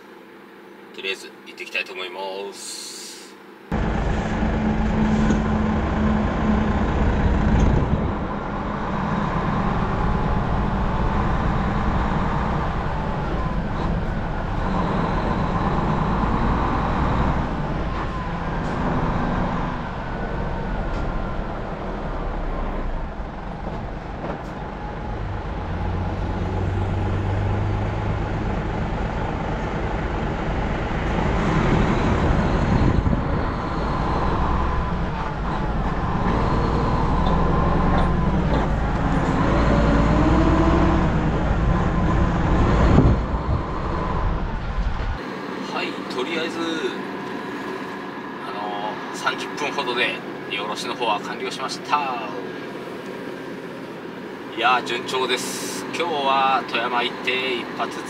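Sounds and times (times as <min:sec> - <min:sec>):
road noise: 0:02.6 - 0:58.0
diesel truck engine running: 0:03.7 - 0:58.0.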